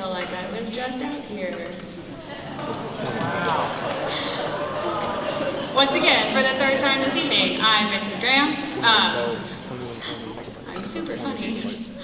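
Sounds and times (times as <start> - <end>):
woman speaking over public address: 0.0 - 1.9, 5.7 - 9.3, 10.6 - 12.0.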